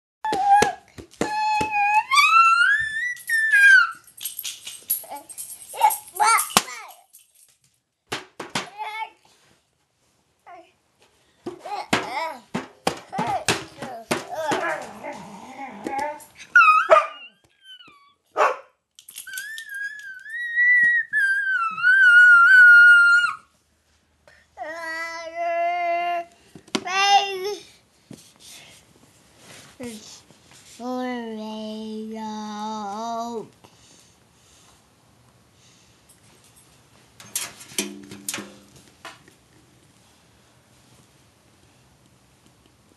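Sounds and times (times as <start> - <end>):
toddler singing high: 0.2 - 4.0, 19.3 - 23.4
dog whining: 0.3 - 4.1, 14.4 - 18.3, 19.2 - 23.4.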